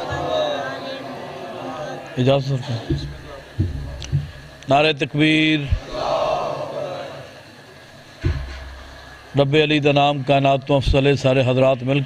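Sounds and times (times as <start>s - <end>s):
low thuds: 2.8s - 4.7s, 8.2s - 9.3s
man speaking into microphone: 9.4s - 12.0s.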